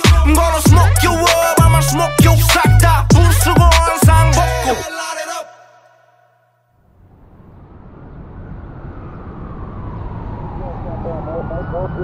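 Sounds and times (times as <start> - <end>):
low rumbling noise: 6.8 - 12.0
voice: 10.6 - 12.0.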